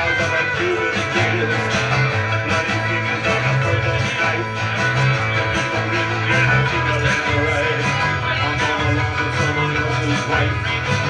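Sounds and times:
bass line: 0.0s - 11.0s
strummed guitars: 0.0s - 11.0s.

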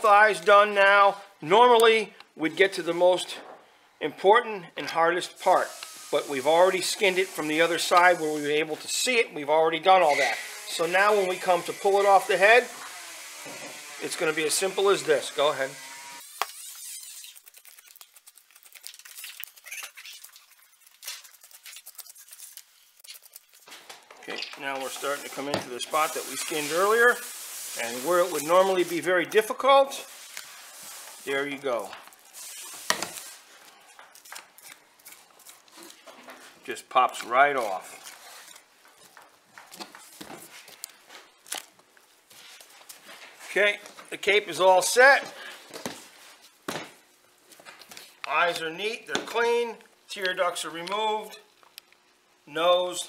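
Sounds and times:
wet crackling of knife cutting hide: 16.2s - 23.7s, 31.2s - 36.0s, 37.1s - 38.7s.

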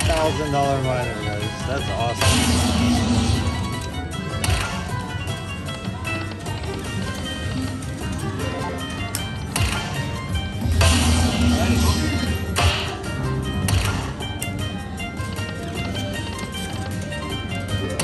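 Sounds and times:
slot machine bonus music: 0.0s - 18.0s
slot machine sound effects: 0.0s - 18.0s.

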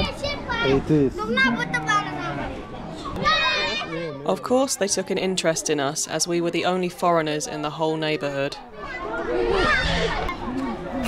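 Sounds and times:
child speaking: 0.0s - 2.6s
children playing: 0.0s - 11.0s.

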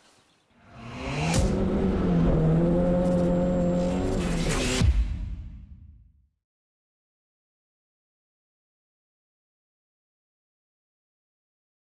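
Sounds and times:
car engine revving: 0.6s - 4.8s.

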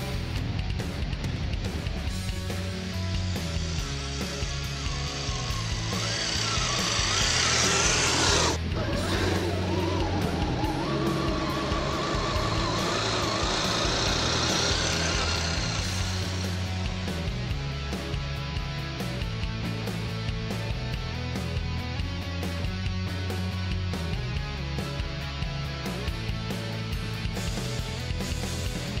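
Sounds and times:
rock music: 0.0s - 29.0s
electric motor whine: 2.2s - 17.4s.

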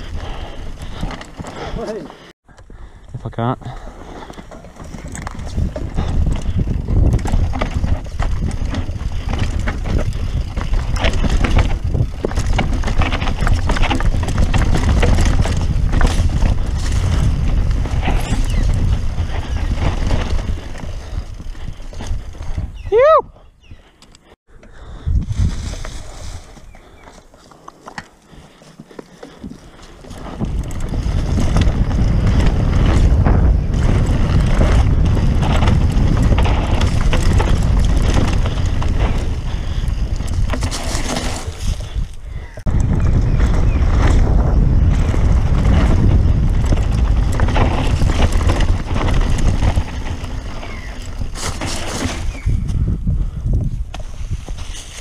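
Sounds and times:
bike tyres and frame rattling: 0.0s - 3.0s, 3.6s - 55.0s
wind rushing on microphone: 4.9s - 23.8s, 24.8s - 26.8s, 30.0s - 55.0s
bike brakes squealing: 17.9s - 19.8s.

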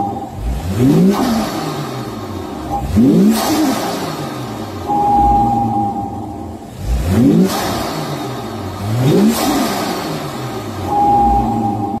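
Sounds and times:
car engine revving: 0.0s - 12.0s
steady whine: 4.8s - 6.7s.

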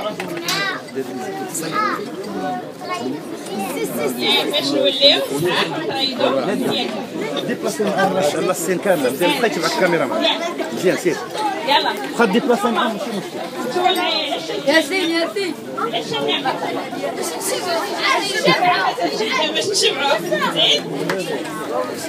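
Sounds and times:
chatter of children and adults: 0.0s - 22.0s.

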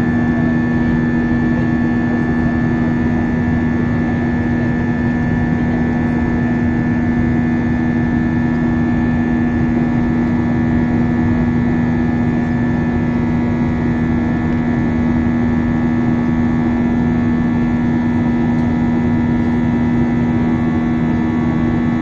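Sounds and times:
jet engine drone in cabin: 0.0s - 22.0s.

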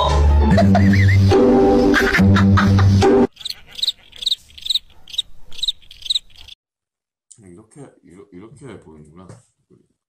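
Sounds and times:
crickets chirping: 3.4s - 6.6s.

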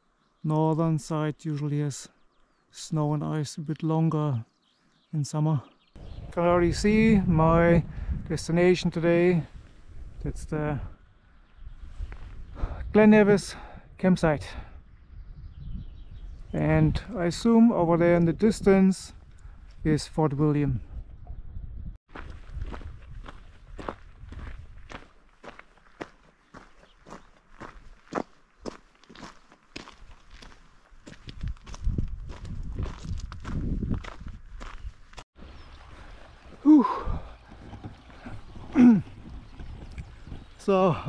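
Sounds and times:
footsteps crunching on gravel: 22.1s - 35.2s.

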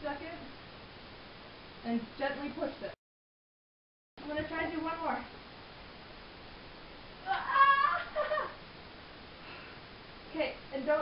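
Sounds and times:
high-pitched vocal cry: 7.2s - 8.6s.

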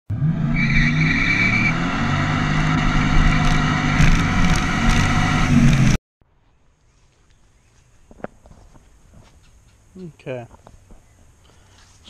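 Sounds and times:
vehicle engine running: 1.4s - 6.0s
sharp knocks: 3.4s - 5.2s.

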